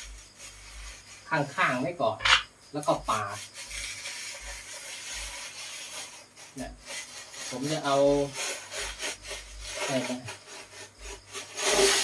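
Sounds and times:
metal screed scraping cement render: 0:00.0 - 0:02.5, 0:03.1 - 0:12.0.

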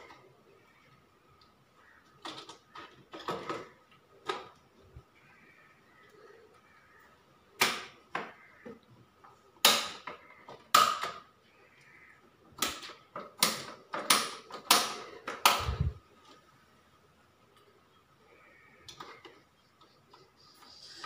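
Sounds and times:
clicks of circuit breakers: 0:07.6 - 0:08.4, 0:09.6 - 0:11.3, 0:12.5 - 0:15.9.

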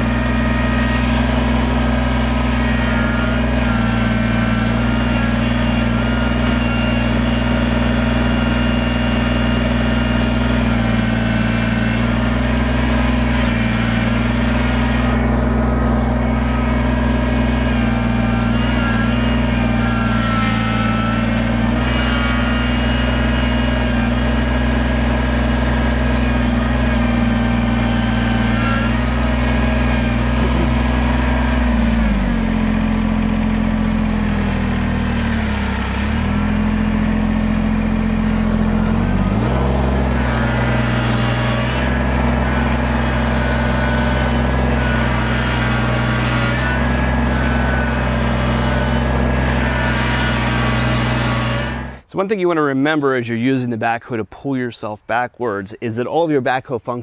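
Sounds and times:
diesel tractor engine under load: 0:00.0 - 0:54.4.

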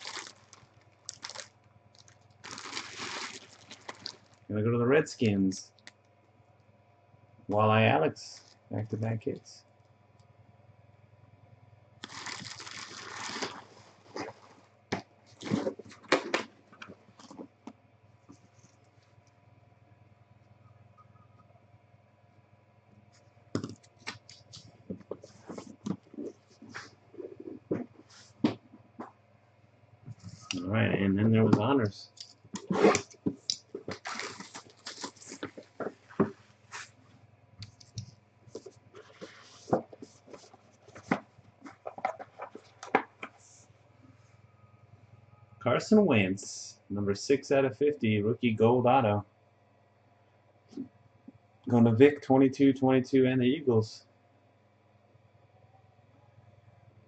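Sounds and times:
plastic wrapping crinkling: 0:00.0 - 0:04.5, 0:12.0 - 0:17.5, 0:23.6 - 0:28.6, 0:32.1 - 0:37.0, 0:37.7 - 0:43.3
hands handling cardboard box: 0:38.0 - 0:43.4.

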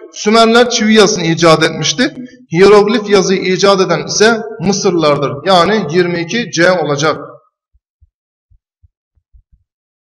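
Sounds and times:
faint low thumps: 0:07.7 - 0:09.7.

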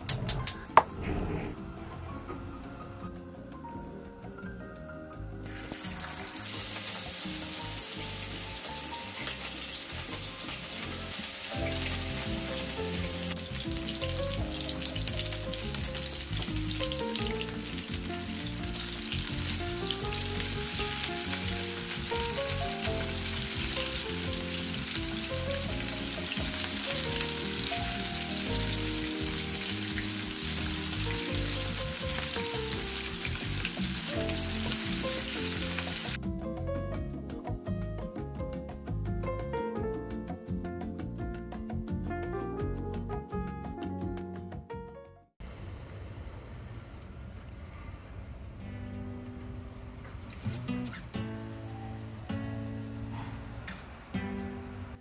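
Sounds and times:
background music with melody: 0:00.0 - 0:45.3
meatballs sizzling in oil: 0:05.5 - 0:36.2.

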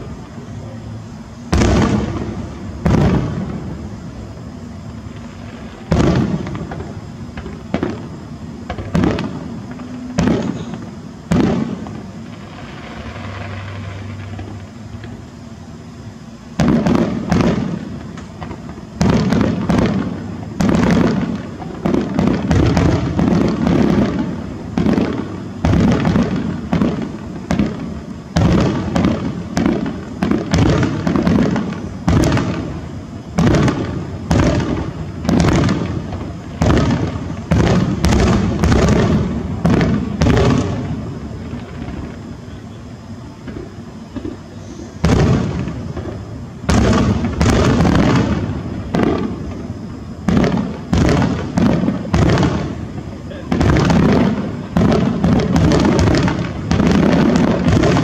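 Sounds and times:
fireworks bangs: 0:00.0 - 0:58.0.

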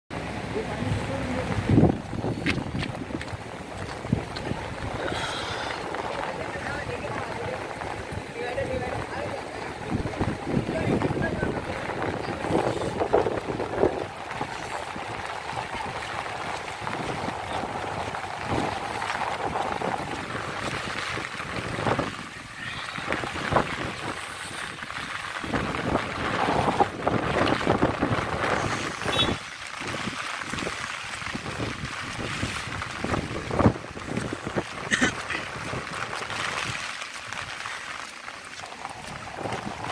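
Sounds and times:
floodwater splashing and rushing: 0:00.1 - 0:39.9
traffic noise: 0:00.1 - 0:39.9
wind buffeting microphone: 0:00.4 - 0:39.9.

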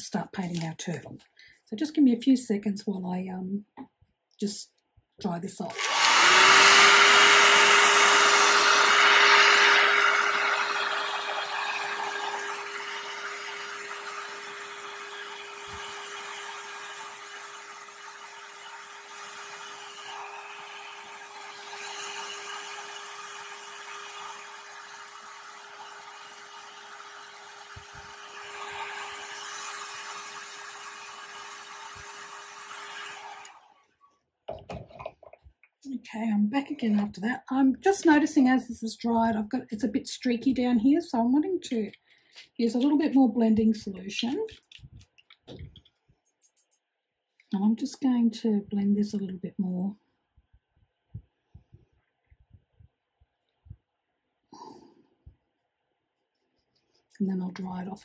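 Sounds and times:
hair dryer running: 0:05.7 - 0:33.7.

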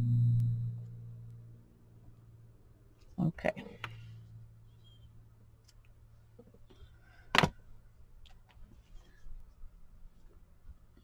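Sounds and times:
low droning tone: 0:00.0 - 0:02.4.

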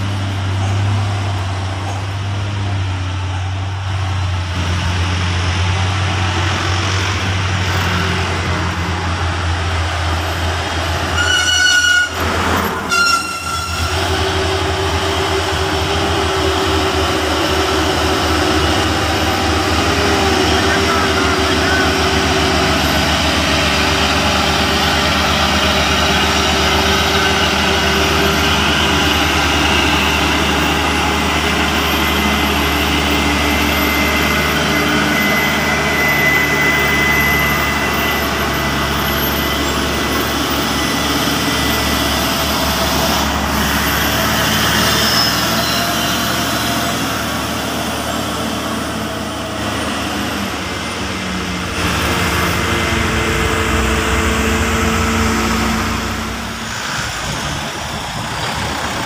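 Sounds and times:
diesel truck engines droning: 0:00.0 - 0:59.0
vehicle horn blasts: 0:11.2 - 0:12.2, 0:12.9 - 0:14.0.

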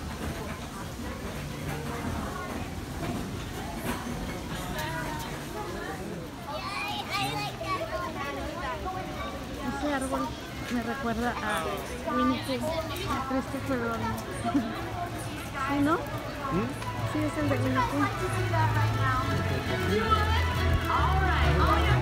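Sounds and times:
chatter of many voices: 0:00.0 - 0:22.0.

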